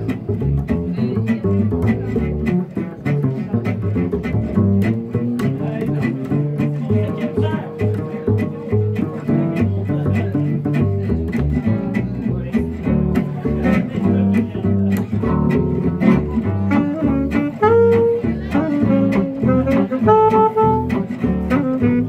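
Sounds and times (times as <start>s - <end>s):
acoustic guitars strumming: 0.0s - 22.0s
plucked double bass: 0.0s - 22.0s
saxophone long held notes: 16.7s - 22.0s.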